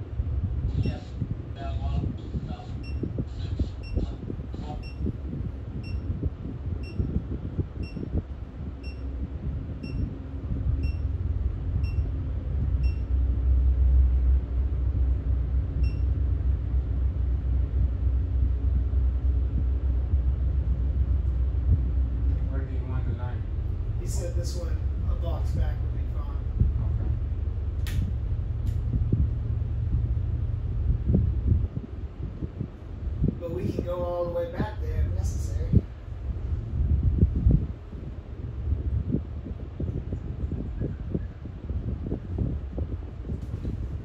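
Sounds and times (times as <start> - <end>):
diesel engines rumbling: 0.0 - 44.0.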